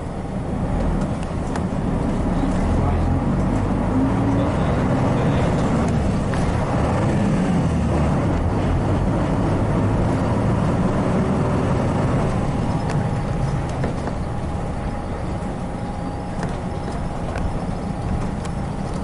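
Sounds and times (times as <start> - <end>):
bus diesel engine running: 0.0 - 19.0
road noise inside bus: 0.0 - 19.0.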